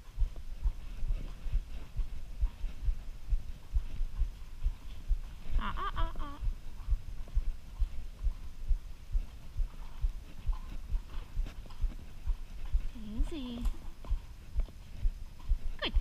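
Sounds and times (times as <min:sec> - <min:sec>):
horse hooves thudding on sand: 0:00.0 - 0:16.0.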